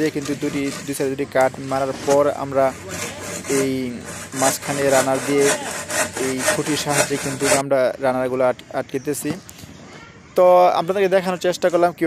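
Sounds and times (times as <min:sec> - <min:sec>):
handsaw cutting bamboo: 0:00.0 - 0:07.7.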